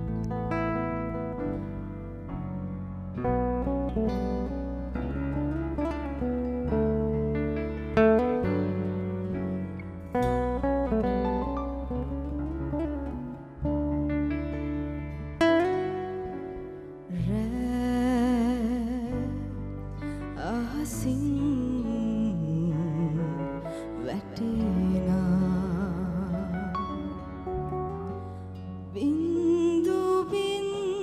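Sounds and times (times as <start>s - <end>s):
classical guitar melody: 0.0s - 31.0s
sustained bass notes: 0.0s - 31.0s.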